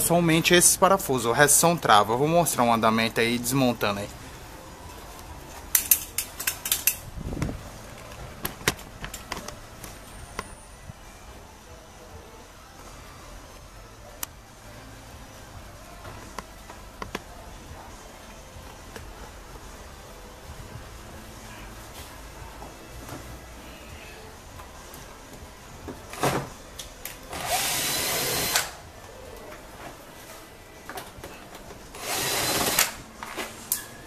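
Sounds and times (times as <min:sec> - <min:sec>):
steady low background noise: 0:00.0 - 0:34.0
handling clicks and knocks: 0:08.0 - 0:10.5.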